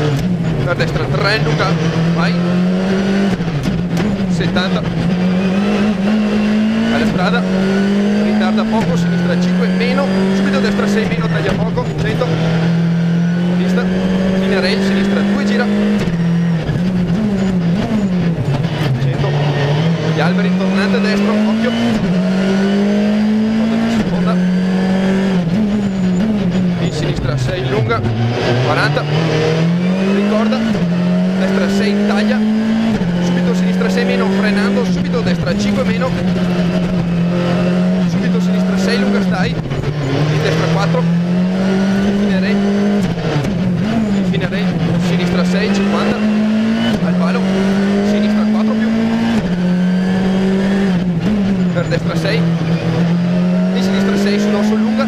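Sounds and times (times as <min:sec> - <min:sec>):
quick gear changes: 0:00.0 - 0:55.0
rally car engine revving: 0:00.0 - 0:55.0.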